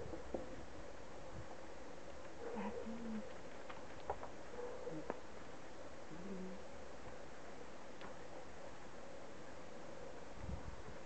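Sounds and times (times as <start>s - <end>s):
bird cooing: 2.5s - 3.4s, 6.1s - 6.7s.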